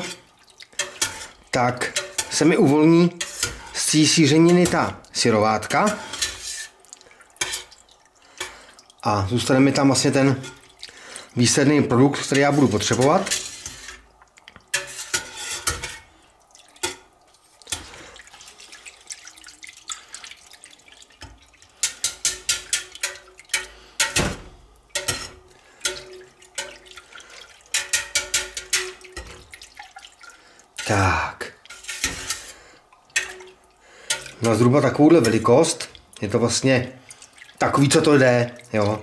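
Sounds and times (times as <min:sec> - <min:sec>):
whisk wires clicking against pot: 0:21.2 - 0:30.9, 0:31.7 - 0:36.4.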